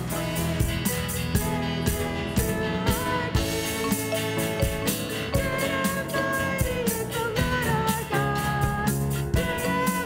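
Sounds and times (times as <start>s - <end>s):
bass guitar: 0.0s - 10.0s
drum kit: 0.0s - 10.0s
piano: 0.0s - 10.0s
woman singing lead: 0.0s - 10.0s.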